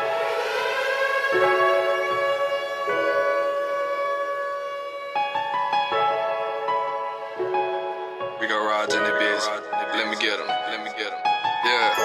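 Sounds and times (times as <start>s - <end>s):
instrumental hip-hop sustained chord: 0.0s - 12.0s.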